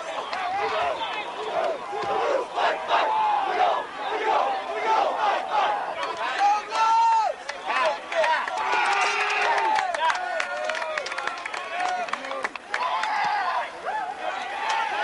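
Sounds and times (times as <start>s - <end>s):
men shouting and whooping: 0.0s - 11.0s.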